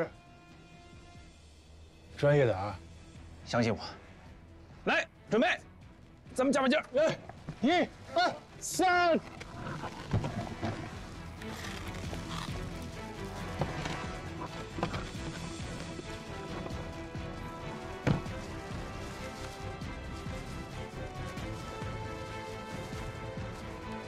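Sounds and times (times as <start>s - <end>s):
dramatic background music: 0.0s - 24.0s.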